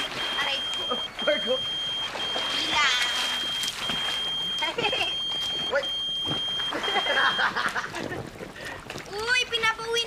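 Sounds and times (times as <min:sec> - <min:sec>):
phone beeping: 0:00.0 - 0:07.6.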